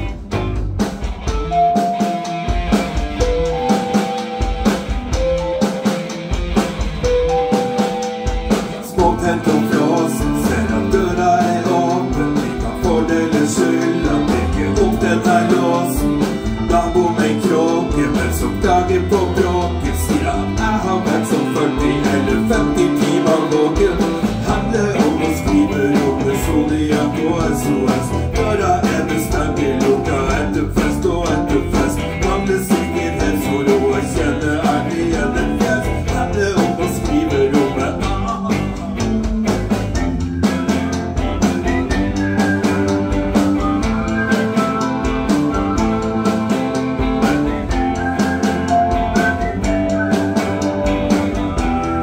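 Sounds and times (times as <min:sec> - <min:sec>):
electric guitar: 0:00.0 - 0:52.0
rock band playing: 0:00.0 - 0:52.0
lead melody of long notes: 0:01.2 - 0:52.0
person singing: 0:07.0 - 0:39.8.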